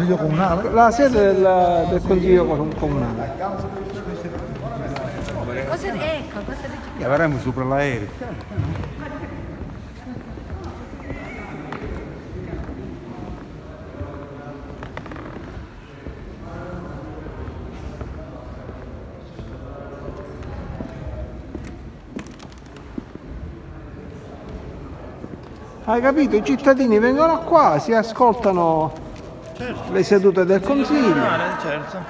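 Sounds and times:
distant people talking: 0.0s - 32.0s.

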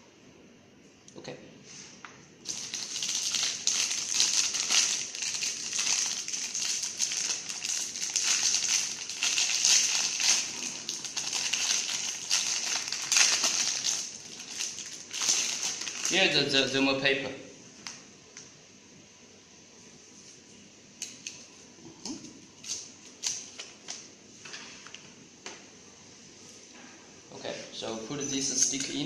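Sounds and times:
foil wrapper crinkling: 2.4s - 16.2s.

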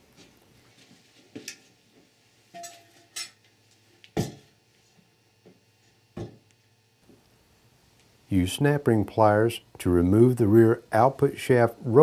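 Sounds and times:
metallic clinks and knocks: 2.6s - 3.4s.

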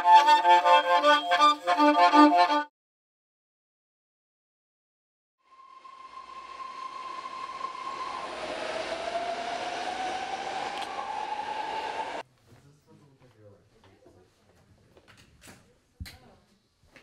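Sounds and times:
train passing with whine: 5.4s - 12.2s.

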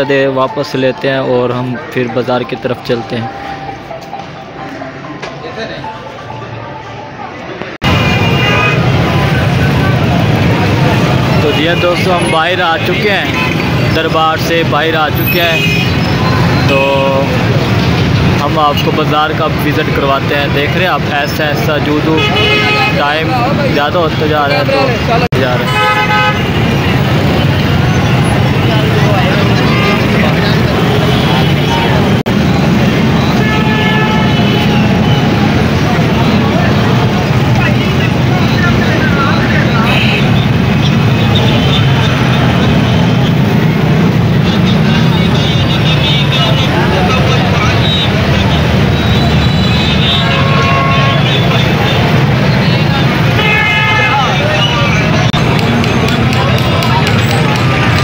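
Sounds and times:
chatter of passers-by: 0.0s - 58.0s
motorcycle and rickshaw traffic: 0.0s - 58.0s
vehicle horns honking: 7.8s - 9.3s, 11.0s - 14.0s, 15.0s - 18.2s, 22.0s - 23.5s, 24.8s - 32.3s, 32.9s - 58.0s.

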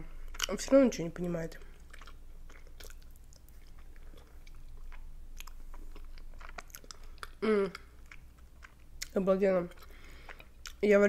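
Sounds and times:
chewing with wet mouth clicks: 0.2s - 0.8s, 1.6s - 10.8s
person humming: 7.4s - 7.9s.

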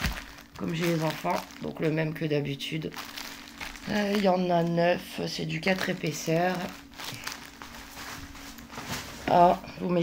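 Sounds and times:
plastic wrapping rustling: 0.0s - 9.7s
low steady hum: 0.0s - 10.0s.

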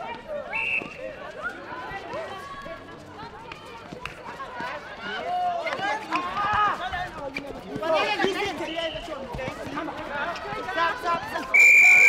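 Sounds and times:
people's voices: 0.0s - 12.0s
whistle blast: 0.5s - 1.0s, 11.5s - 12.0s.

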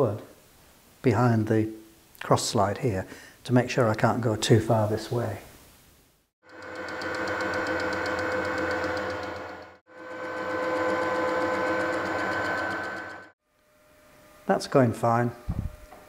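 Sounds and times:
metal lathe whining: 6.5s - 13.3s.

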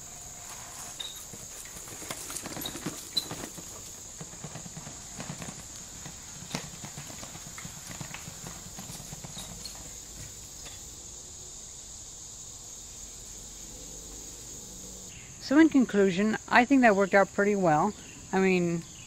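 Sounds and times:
bicycle rattling over bumpy grass: 0.0s - 10.9s
crickets chirping: 0.0s - 19.0s.

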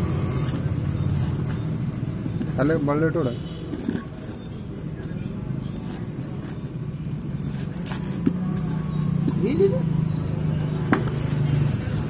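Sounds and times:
cardboard and tape crinkling: 3.7s - 9.5s.

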